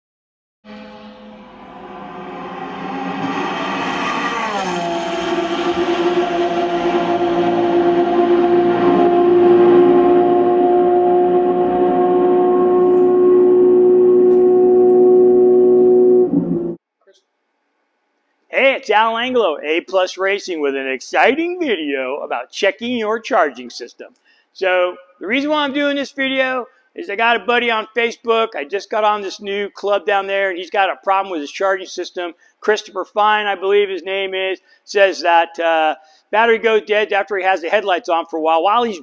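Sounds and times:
engine running: 0:00.7 - 0:16.8.

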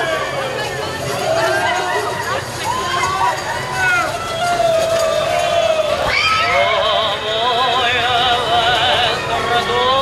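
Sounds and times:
long sliding shout: 0:00.0 - 0:07.1
people calling out: 0:00.0 - 0:10.0.

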